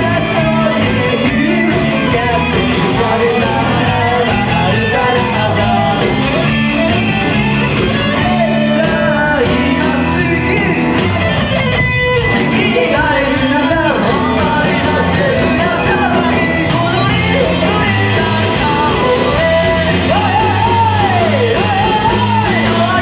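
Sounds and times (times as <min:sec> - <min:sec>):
person singing: 0:00.0 - 0:11.4, 0:12.2 - 0:23.0
drum kit: 0:00.0 - 0:23.0
electric bass: 0:00.0 - 0:23.0
electric guitars: 0:00.0 - 0:23.0.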